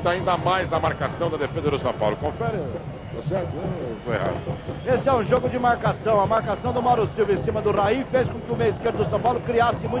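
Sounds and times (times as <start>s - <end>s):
low background noise: 0.0s - 10.0s.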